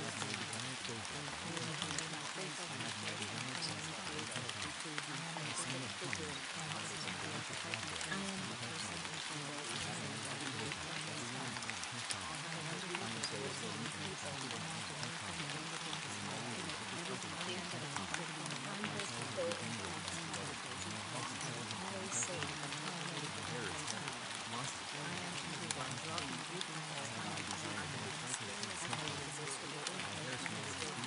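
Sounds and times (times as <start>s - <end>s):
faint overlapping speech: 0.0s - 31.0s
rain drop ticks: 0.0s - 31.0s
steady rain: 0.0s - 31.0s.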